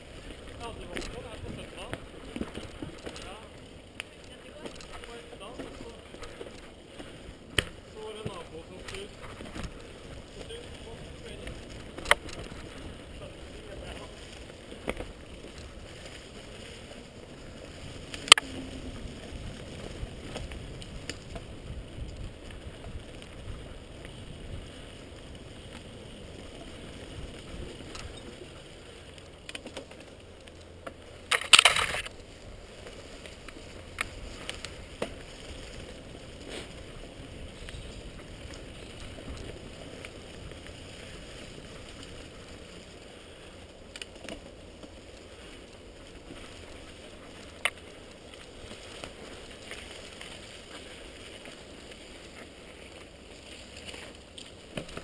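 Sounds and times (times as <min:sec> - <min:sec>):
tyres rolling over dirt: 0:00.0 - 0:55.0.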